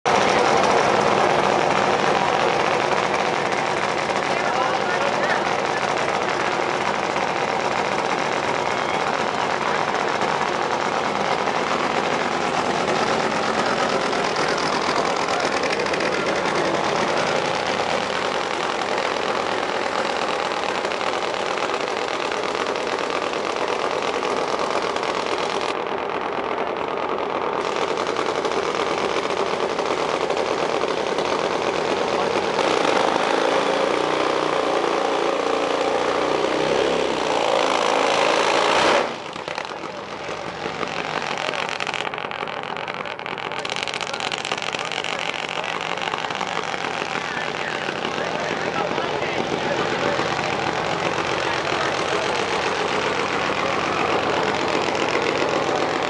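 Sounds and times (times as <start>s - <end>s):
loud racing engine running: 0.0s - 56.0s.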